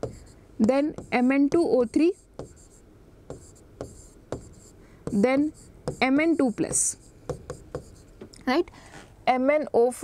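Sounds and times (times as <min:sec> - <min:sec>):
marker pen writing on a board: 0:00.0 - 0:08.3.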